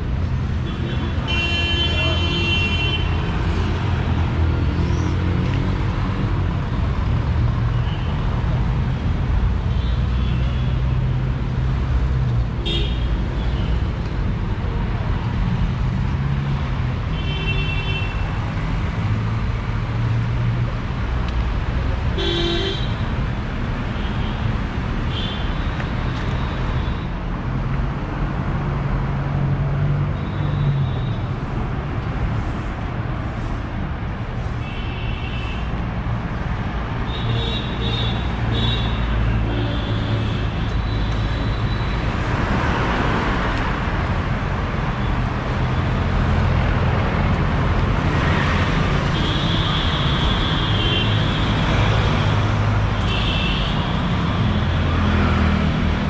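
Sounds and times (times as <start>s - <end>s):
traffic rumble: 0.0s - 56.0s.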